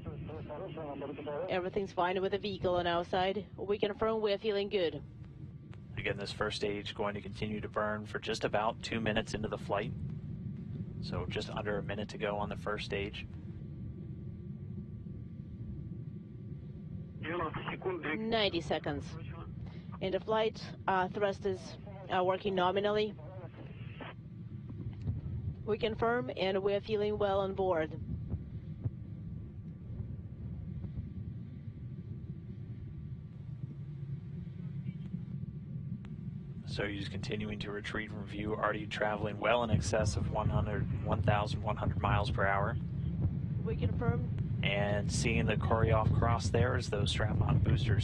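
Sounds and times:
distant rocket engine rumble: 0.0s - 48.0s.

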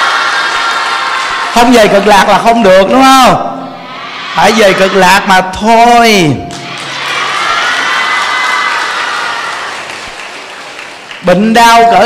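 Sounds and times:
audience applauding and cheering: 0.0s - 2.1s, 6.5s - 12.0s
crowd voices: 3.7s - 5.3s, 6.5s - 11.2s.

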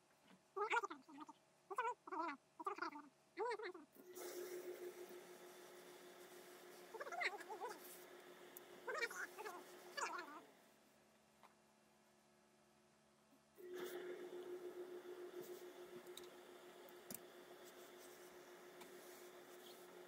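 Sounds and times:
steam iron hissing: 4.0s - 10.5s, 13.6s - 20.0s
steady hum: 4.0s - 11.0s, 13.5s - 20.0s.

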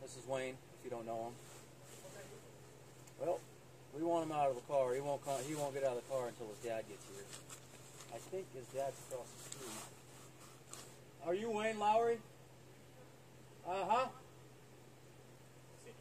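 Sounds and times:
steady low hum: 0.0s - 16.0s
person talking: 3.2s - 7.4s, 8.1s - 10.0s.

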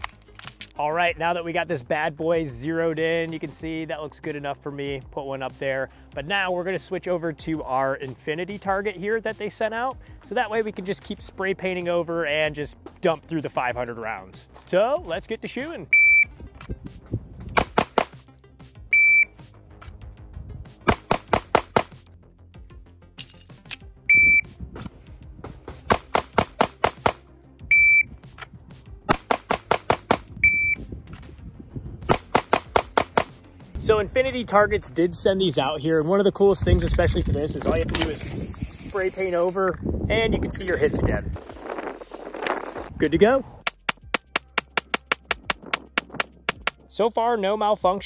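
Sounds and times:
shot timer beeps: 15.9s - 16.3s, 18.9s - 19.4s, 24.1s - 24.5s, 27.7s - 28.1s, 30.4s - 30.8s
rapid pistol shots: 17.6s - 18.2s, 20.8s - 22.0s, 25.9s - 27.2s, 29.1s - 30.3s, 32.1s - 33.4s.

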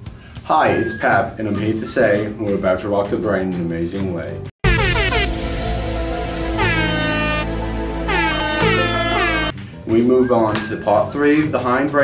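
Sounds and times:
music with steady bass: 3.1s - 12.0s
air horn blasts sliding down: 6.5s - 9.5s.

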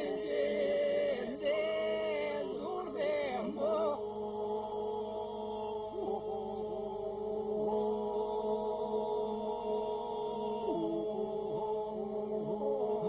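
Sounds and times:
men singing a cappella drone: 0.0s - 13.0s.

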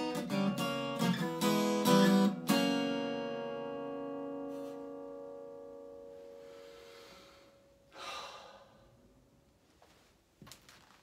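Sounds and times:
acoustic guitar: 0.0s - 8.0s
man sighing: 6.7s - 9.0s.

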